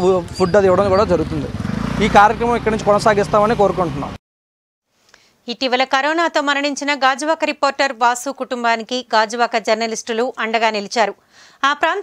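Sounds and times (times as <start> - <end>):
man speaking: 0.0 - 4.2
passing vehicle engine: 0.0 - 4.2.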